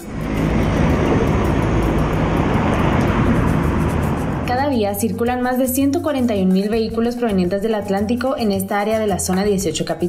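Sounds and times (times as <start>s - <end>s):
bus driving past: 0.0s - 4.6s
cars driving past: 0.0s - 4.8s.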